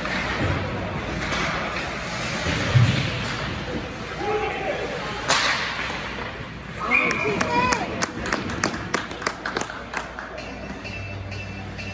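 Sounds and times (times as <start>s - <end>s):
skates on ice: 0.0s - 10.7s.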